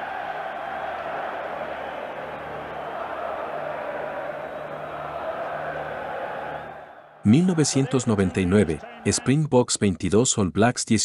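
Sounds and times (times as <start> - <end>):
stadium crowd cheering: 0.0 - 9.5.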